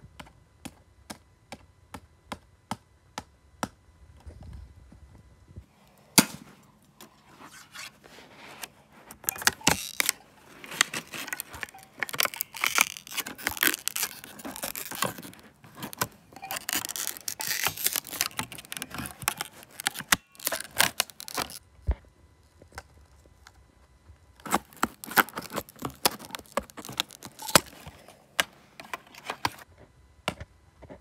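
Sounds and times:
sharp crack: 0:06.1 - 0:06.6
blade scraping plastic disc: 0:07.1 - 0:21.6, 0:24.4 - 0:29.6.

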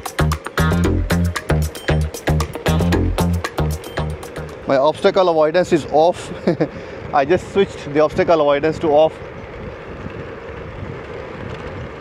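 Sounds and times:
electric scooter riding on tarmac: 0:00.0 - 0:12.0.

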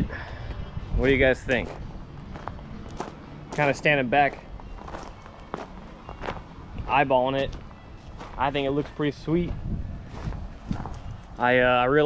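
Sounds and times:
footsteps on gravel: 0:01.5 - 0:11.5.

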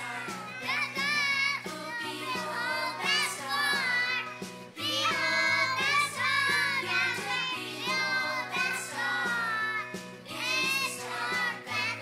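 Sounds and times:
children singing into microphones: 0:00.0 - 0:12.0
instrumental accompaniment with beat: 0:00.0 - 0:12.0.

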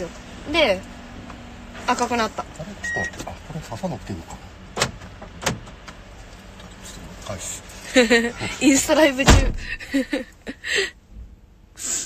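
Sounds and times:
low hum inside car: 0:00.0 - 0:12.0.

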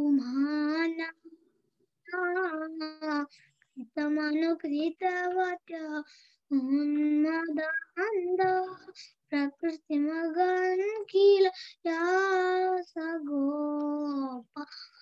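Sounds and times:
child singing unaccompanied: 0:00.0 - 0:01.3, 0:02.0 - 0:15.0.

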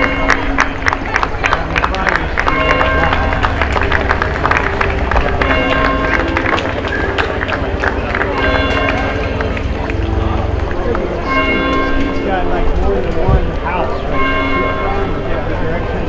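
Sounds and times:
background music with held notes: 0:00.0 - 0:16.0
people talking: 0:00.0 - 0:16.0.

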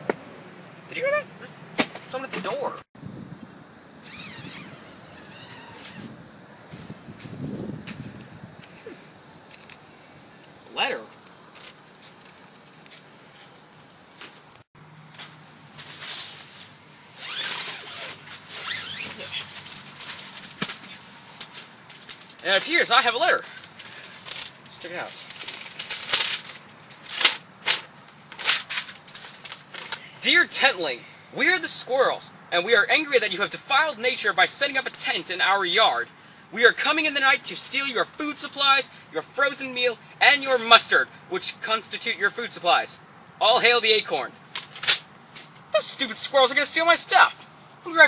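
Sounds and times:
wind on microphone: 0:03.0 - 0:08.9
tent zipper unzipping: 0:04.0 - 0:06.2, 0:17.1 - 0:19.7
tent fabric rustling: 0:12.0 - 0:30.0.

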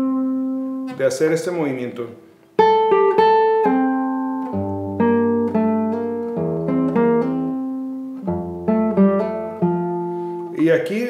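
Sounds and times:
classical guitar playing: 0:00.0 - 0:11.0.

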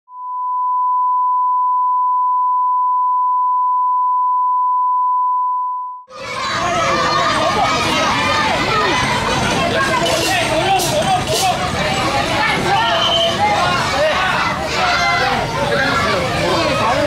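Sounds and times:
electronic test tone: 0:00.1 - 0:06.1
crowd calling out: 0:06.1 - 0:17.0.

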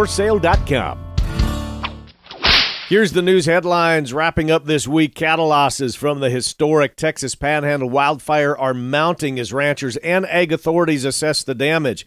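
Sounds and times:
guitar music: 0:00.0 - 0:02.1
swish sound effect: 0:01.8 - 0:03.0.

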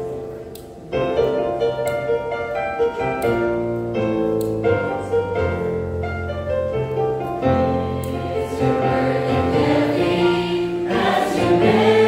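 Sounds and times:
choir singing gospel: 0:07.4 - 0:12.0.

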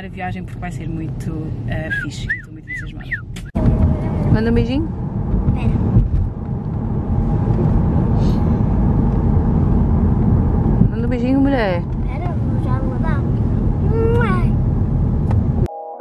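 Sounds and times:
car engine and road rumble: 0:00.0 - 0:15.7.

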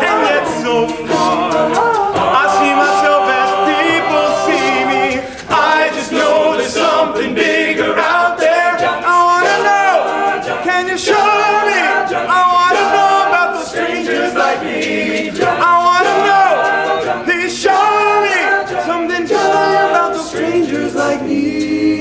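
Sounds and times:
male a cappella group singing: 0:00.0 - 0:22.0.

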